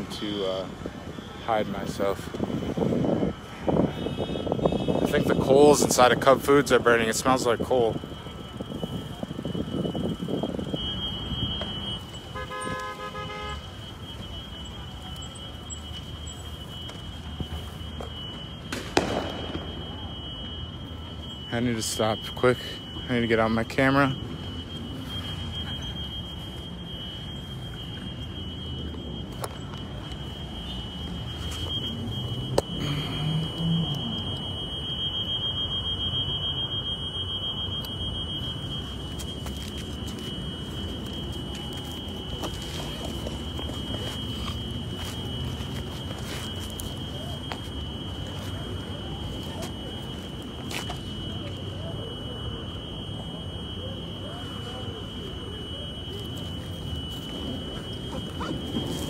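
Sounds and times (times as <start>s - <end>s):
high-pitched electronic alarm tone: 0.0s - 59.0s
outdoor street noise: 0.0s - 59.0s
sharp crack: 18.7s - 19.8s.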